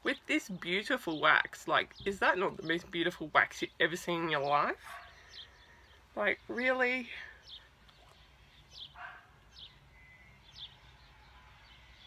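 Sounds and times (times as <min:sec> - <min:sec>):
faint bird chirps: 0:07.2 - 0:12.0.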